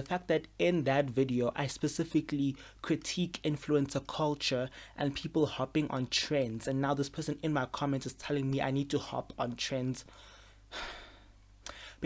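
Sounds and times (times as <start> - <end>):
man sighing: 10.4 - 12.0.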